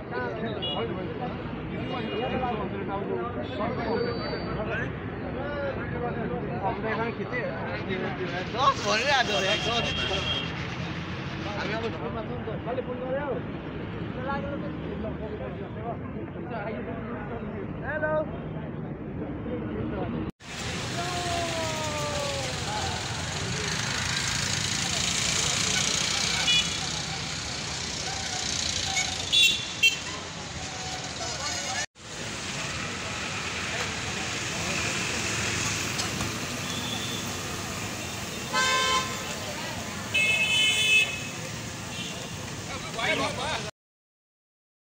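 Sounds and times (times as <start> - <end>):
street noise: 0.0 - 43.7
crowd chatter: 21.0 - 29.4, 32.7 - 43.7
vehicle horn honking: 25.7 - 26.8, 28.8 - 30.2, 38.4 - 39.3, 40.1 - 42.3.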